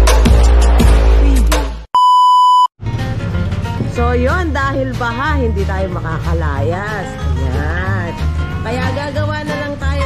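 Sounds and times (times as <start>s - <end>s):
bass-heavy intro music: 0.0s - 1.9s, 2.8s - 10.0s
electronic beep: 2.0s - 2.7s.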